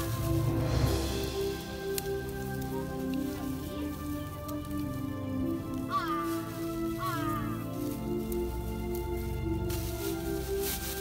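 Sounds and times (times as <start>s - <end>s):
grass and plastic sack rustling: 0.0s - 11.0s
music of held tones: 0.0s - 11.0s.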